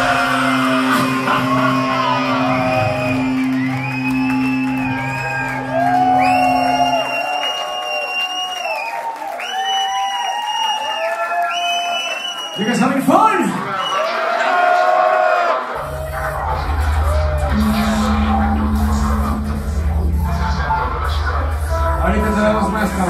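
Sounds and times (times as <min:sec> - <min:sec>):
band holding low note: 0:00.0 - 0:07.2, 0:15.8 - 0:23.0
crowd cheering and whistling: 0:00.0 - 0:23.0.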